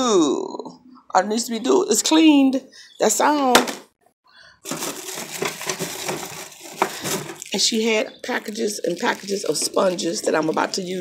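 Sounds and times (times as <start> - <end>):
plastic crinkling and rustling: 4.6 - 11.0.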